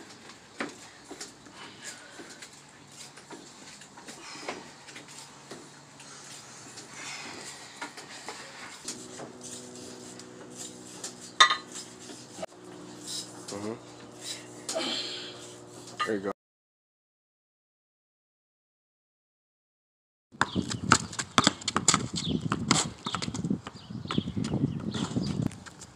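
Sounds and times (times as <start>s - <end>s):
steady low hum: 0.0s - 16.3s.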